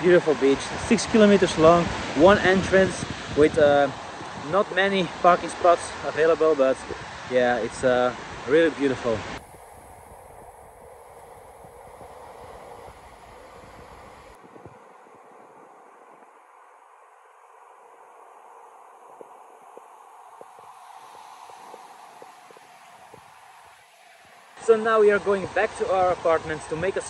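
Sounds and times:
outdoor background hiss: 0.0 - 27.0.

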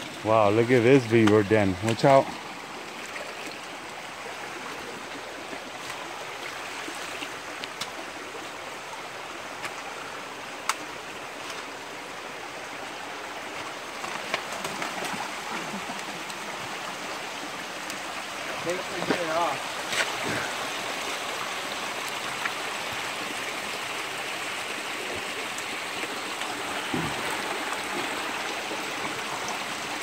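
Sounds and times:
creek water running over rocks: 0.0 - 30.0.

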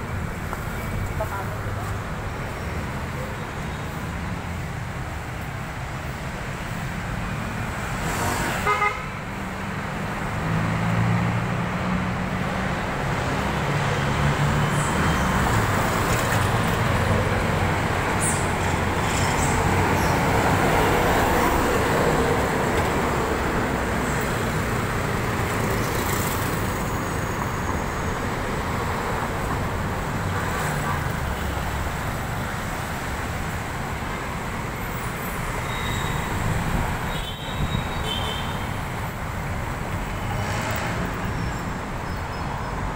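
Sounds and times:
cars and motorcycles passing: 0.0 - 42.9
vehicle horn: 8.6 - 9.2, 37.1 - 38.7.

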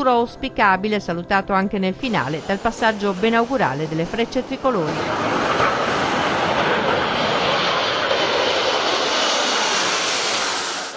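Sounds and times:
jets roaring overhead: 2.0 - 10.9.

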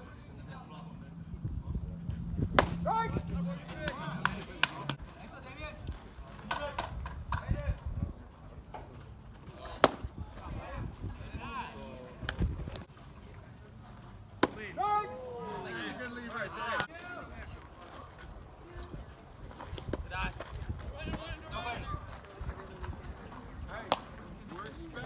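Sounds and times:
voices calling out: 0.0 - 6.9, 8.2 - 25.0
bat cracking on baseball: 2.5 - 2.8, 9.5 - 10.2, 14.4 - 14.7, 23.9 - 24.1.

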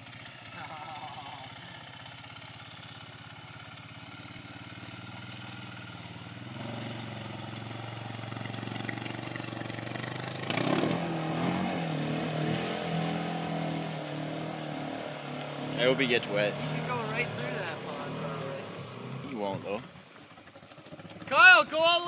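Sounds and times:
quad engine running and revving: 0.0 - 21.3.

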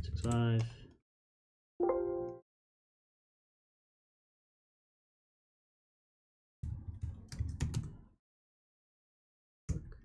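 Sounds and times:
computer keyboard keystrokes: 7.0 - 8.0.

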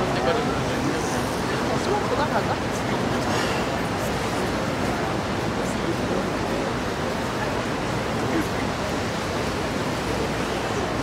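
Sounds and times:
event space background noise: 0.0 - 11.0.

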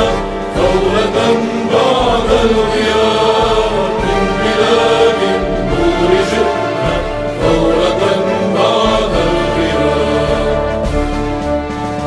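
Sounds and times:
chorus singing anthem: 0.0 - 12.0
instrumental accompaniment: 0.0 - 12.0.

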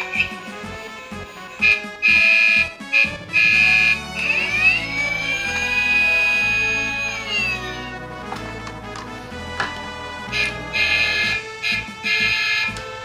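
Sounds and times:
background music with bass line: 0.0 - 13.0
toy siren beeps and rising tone: 1.5 - 7.9, 10.3 - 12.8.

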